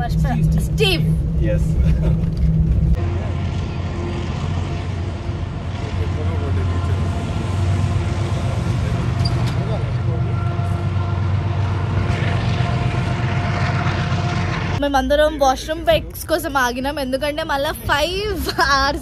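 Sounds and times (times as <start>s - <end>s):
vehicle engine drone from cabin: 0.0s - 14.8s.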